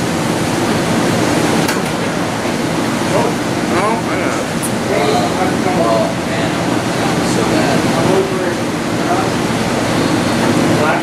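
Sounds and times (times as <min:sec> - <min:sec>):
dense fan hiss: 0:00.0 - 0:11.0.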